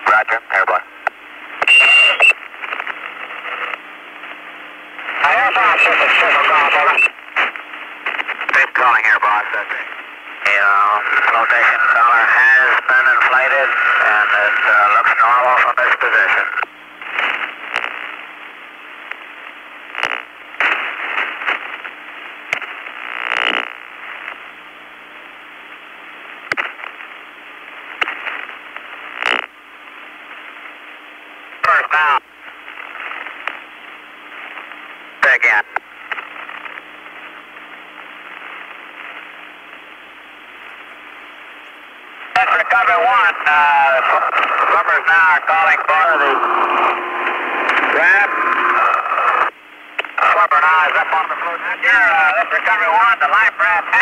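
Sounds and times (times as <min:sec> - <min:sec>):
garbled radio voice: 0:00.0 - 0:00.9, 0:05.1 - 0:07.1, 0:08.5 - 0:16.6, 0:31.6 - 0:32.2, 0:35.2 - 0:35.8, 0:42.3 - 0:49.5, 0:50.2 - 0:54.0
radio hiss with low hum: 0:00.0 - 0:54.0.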